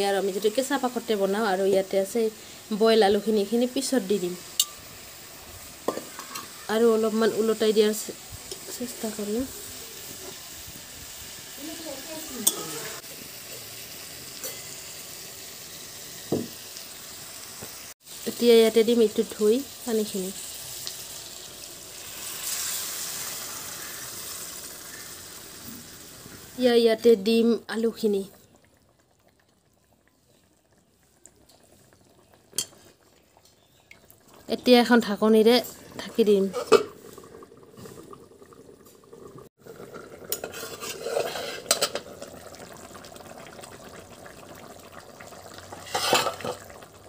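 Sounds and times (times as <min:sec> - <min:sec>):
curry simmering: 0:00.0 - 0:47.0
water sizzling in hot oil: 0:00.0 - 0:47.0
steel lid clinking on rim: 0:04.6 - 0:04.8, 0:12.4 - 0:12.8
lid clatter and hiss: 0:05.8 - 0:06.6, 0:07.4 - 0:10.8, 0:36.4 - 0:37.2, 0:40.3 - 0:42.1, 0:45.8 - 0:46.7.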